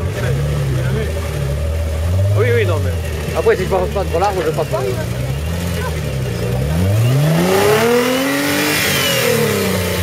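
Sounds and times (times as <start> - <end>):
off-road vehicle engine at low revs: 0.0 - 10.0.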